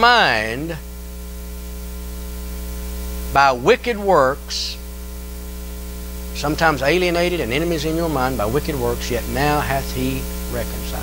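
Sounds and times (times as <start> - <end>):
electrical mains hum: 0.0 - 11.0
equipment hiss: 0.0 - 11.0.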